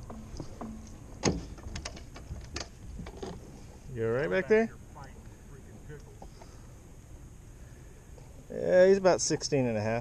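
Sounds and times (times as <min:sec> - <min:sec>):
sharp knocks and clicks: 0:00.0 - 0:03.4.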